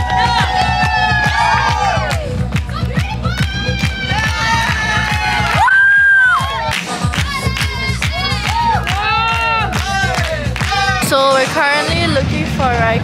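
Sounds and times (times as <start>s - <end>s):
crowd cheering and shouting: 0.0s - 12.0s
music with steady beat: 0.0s - 13.0s.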